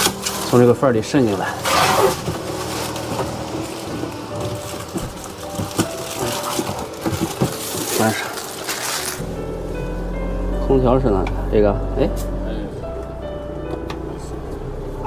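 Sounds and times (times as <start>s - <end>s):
plastic film crinkling: 0.0s - 9.2s
quiet background music: 0.0s - 15.0s.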